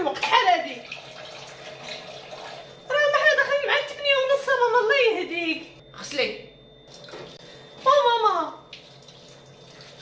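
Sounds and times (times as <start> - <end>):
woman speaking: 0.0 - 0.9, 2.9 - 6.6, 7.8 - 8.7
tap water running into sink: 0.8 - 2.7.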